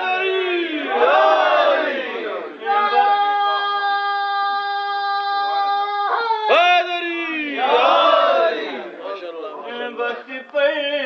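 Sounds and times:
crowd of men calling out: 0.0 - 9.0.

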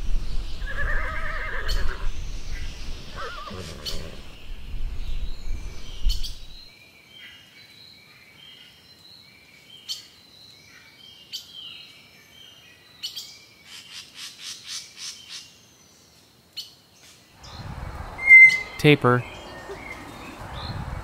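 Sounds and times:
low rumbling outdoor noise: 0.0 - 6.7, 17.4 - 21.0
ponies whinnying: 0.6 - 2.1, 3.1 - 4.4
faint high chirps: 17.4 - 20.4.

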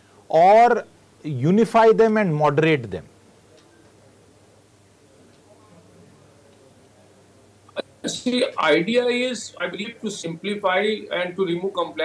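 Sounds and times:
man speaking: 0.3 - 3.1, 7.8 - 12.0.

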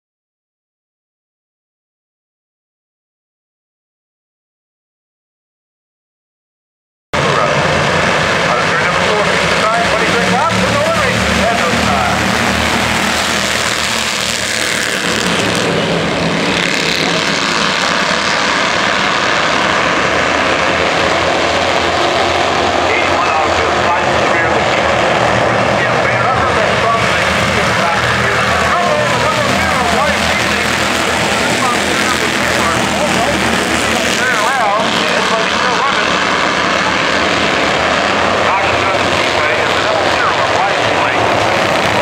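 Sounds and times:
race car engines droning: 7.2 - 42.0
voices: 8.4 - 13.6, 20.6 - 37.0, 38.2 - 42.0.

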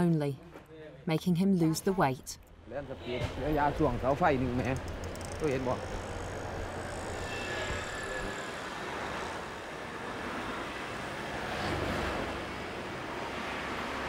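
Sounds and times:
highway traffic noise: 2.4 - 14.0.

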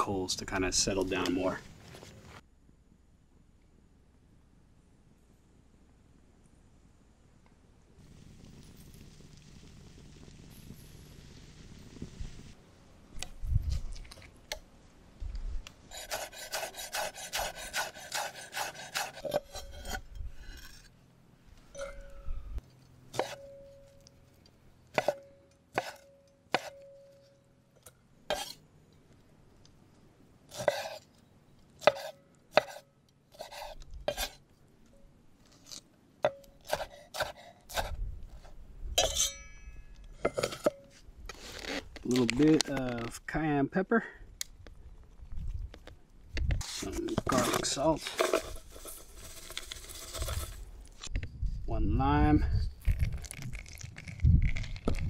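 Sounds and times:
knife chopping on wooden board: 36.3 - 37.9
sharp ringing knife knocks: 39.0 - 39.9.

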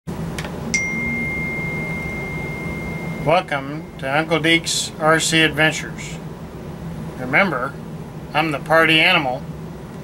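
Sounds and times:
low hum: 0.1 - 7.2
high-pitched electronic beep tone: 0.8 - 4.4.

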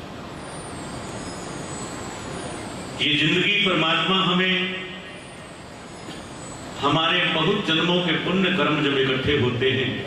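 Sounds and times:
crowded hall background noise: 0.0 - 10.0
man talking over loudspeakers: 3.0 - 5.0, 6.8 - 10.0.

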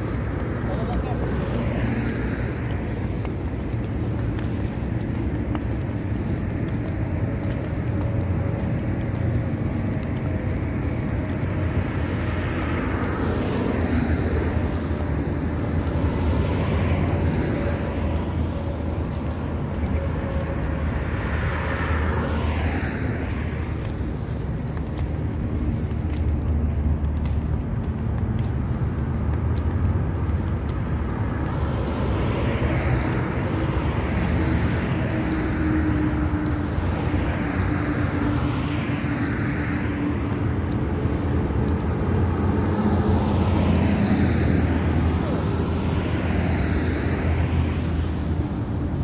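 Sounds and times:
low traffic rumble: 0.0 - 49.0
vehicles passing: 0.0 - 49.0.

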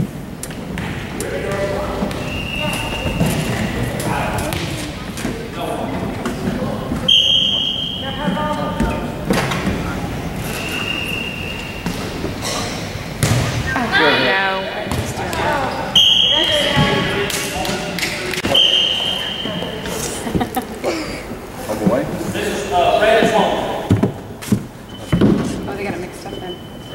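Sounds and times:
volleyball thuds: 0.5 - 5.4, 13.1 - 14.0
voices: 1.0 - 24.2, 24.8 - 26.9
referee's whistle blasts: 2.2 - 3.5, 7.1 - 8.4, 10.5 - 11.9, 15.9 - 17.1, 18.4 - 19.7.

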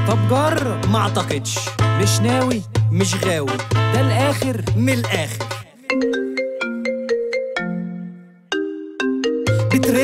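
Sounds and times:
marimba ringtone melody: 4.6 - 10.0.

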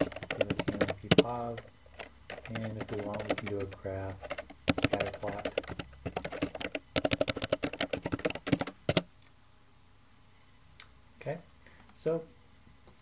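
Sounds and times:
computer keyboard typing: 0.0 - 9.1.

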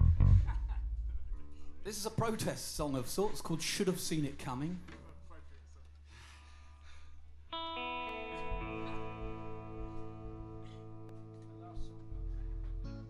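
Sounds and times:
amplifier hum: 0.0 - 1.5
electric guitar chord: 7.5 - 13.0.

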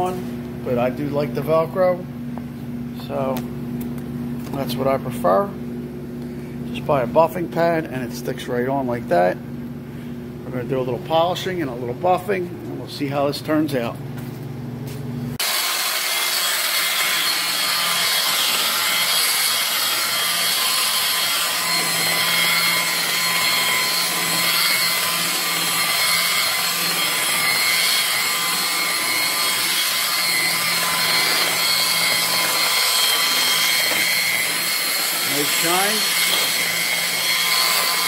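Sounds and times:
rotary polisher whirring: 15.4 - 38.0.

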